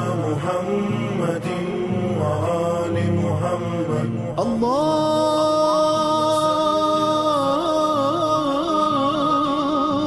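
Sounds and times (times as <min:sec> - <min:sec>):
voices chanting devotional song: 0:00.0 - 0:10.0.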